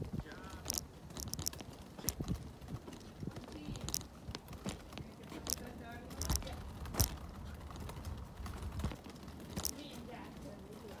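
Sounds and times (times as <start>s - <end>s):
wheelchair clacks and knocks: 0.0s - 11.0s
wheelchair wheels rolling rumble: 0.0s - 11.0s.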